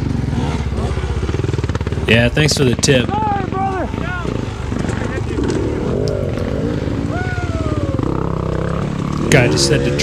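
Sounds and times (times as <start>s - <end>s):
dirt bike engines at low revs: 0.0s - 10.0s
indistinct voices: 2.0s - 10.0s.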